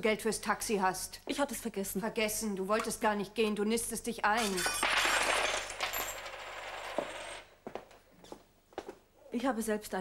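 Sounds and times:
coins clattering and jingling: 0:04.4 - 0:07.4.

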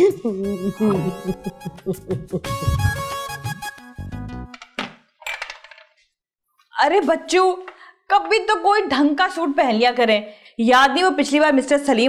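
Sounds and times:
person laughing: 0:00.0 - 0:02.9.

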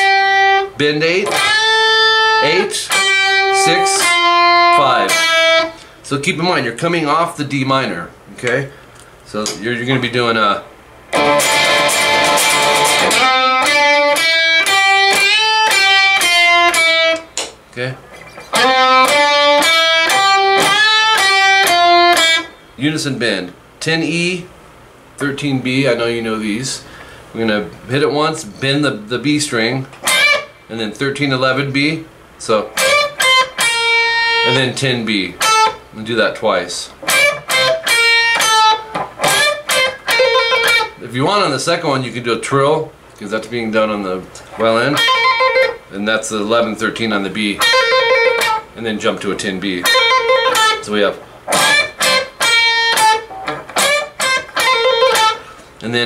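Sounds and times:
electric guitar strummed chord: 0:00.0 - 0:05.8, 0:11.1 - 0:17.3, 0:18.6 - 0:22.5, 0:37.1 - 0:40.9, 0:51.5 - 0:55.5
electric guitar bent picked notes: 0:00.0 - 0:06.0, 0:11.1 - 0:22.8, 0:30.0 - 0:30.7, 0:32.6 - 0:36.0, 0:36.9 - 0:41.0, 0:44.4 - 0:45.9, 0:46.5 - 0:56.0.

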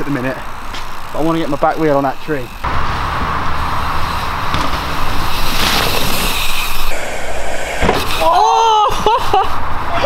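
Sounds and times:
bike tyres rolling over dirt: 0:00.0 - 0:08.5.

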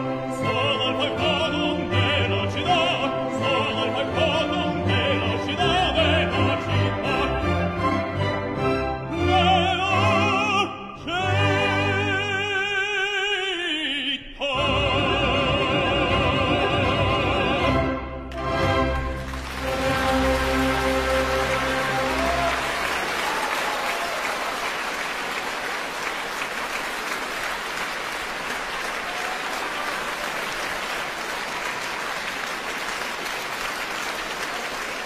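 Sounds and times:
audience applauding: 0:19.0 - 0:35.0.

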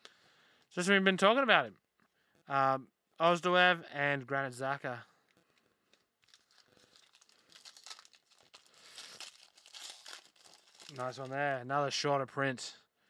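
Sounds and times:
foil wrapper crinkling and tearing: 0:05.3 - 0:11.4.

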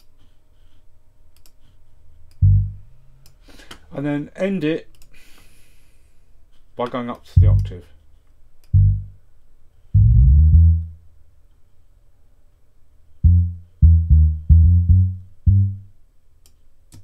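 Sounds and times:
deep sampled bass notes: 0:02.4 - 0:02.9, 0:07.4 - 0:07.8, 0:08.7 - 0:09.2, 0:10.0 - 0:11.0, 0:13.2 - 0:16.0.

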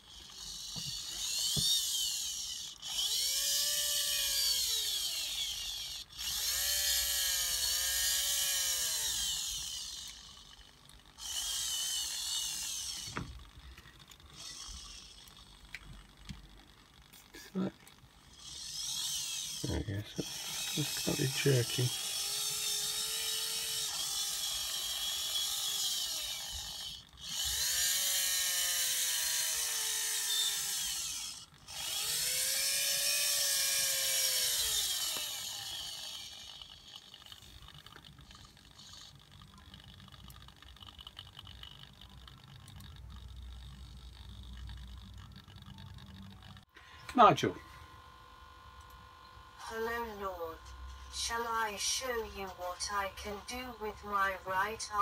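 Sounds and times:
geared servo motor whine: 0:00.0 - 0:16.2, 0:16.9 - 0:42.0, 0:42.7 - 0:55.0.

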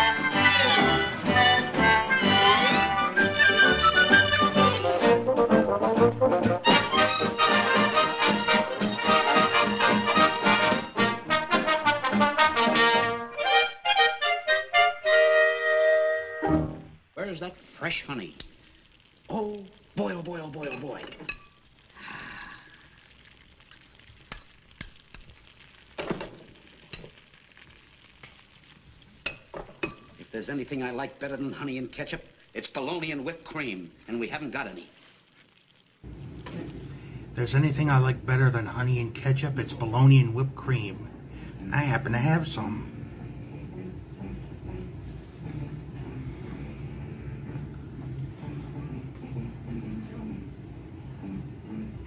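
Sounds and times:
film soundtrack hiss: 0:00.0 - 0:52.0
low steady rumble: 0:36.1 - 0:52.0.

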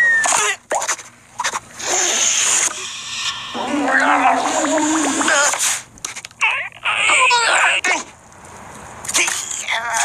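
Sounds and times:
cartoon creature crying: 0:06.4 - 0:07.8.

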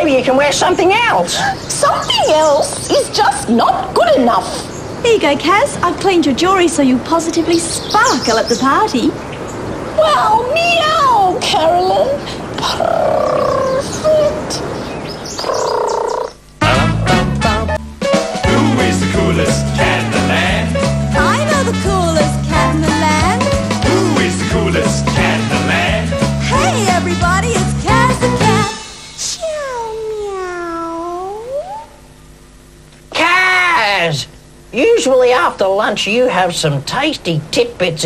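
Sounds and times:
held pitched vocal sound: 0:15.9 - 0:17.7, 0:18.4 - 0:27.1
upbeat children's tv music: 0:16.6 - 0:29.9
person imitating cat meow: 0:29.2 - 0:32.0.

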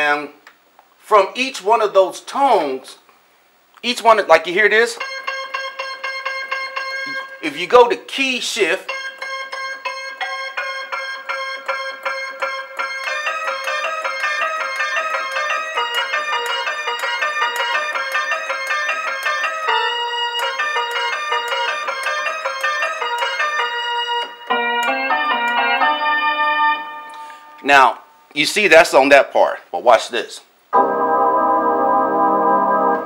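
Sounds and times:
synthesizer with piano-like tone: 0:30.8 - 0:33.0.

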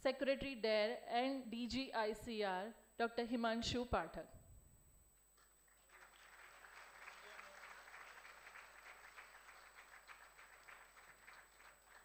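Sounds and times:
audience applause: 0:05.7 - 0:12.0.

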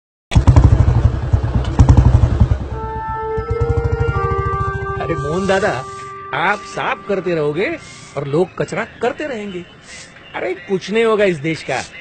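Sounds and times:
motorcycle engine running: 0:00.3 - 0:05.4.

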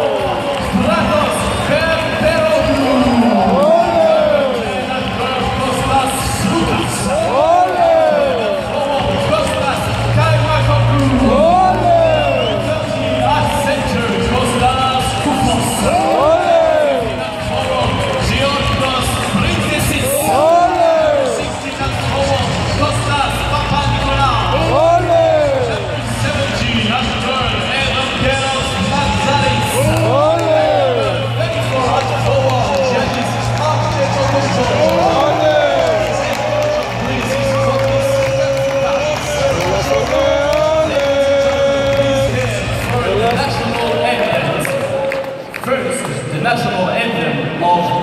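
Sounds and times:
announcer calling over loudspeaker: 0:00.0 - 0:48.0
large crowd noise: 0:00.0 - 0:48.0
music with low bass: 0:08.6 - 0:15.9.

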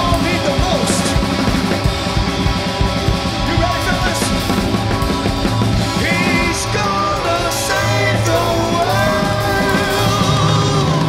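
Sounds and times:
funk band playing: 0:00.0 - 0:11.0.

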